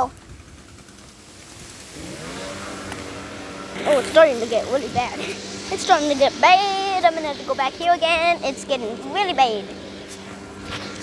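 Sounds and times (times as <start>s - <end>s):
motor engine running: 0.0s - 11.0s.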